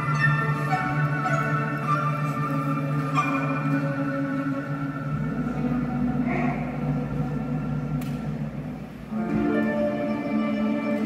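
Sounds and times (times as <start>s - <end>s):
orchestra playing sustained chords: 0.0s - 11.0s.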